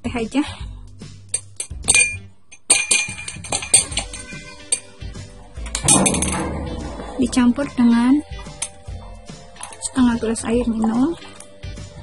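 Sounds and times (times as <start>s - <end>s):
faint background music: 0.0s - 12.0s
teaspoon clinking on glass: 1.4s - 5.0s.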